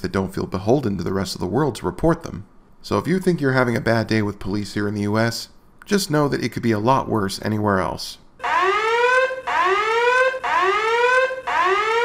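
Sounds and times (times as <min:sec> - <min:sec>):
rising electronic alarm whoops: 0:08.4 - 0:12.0.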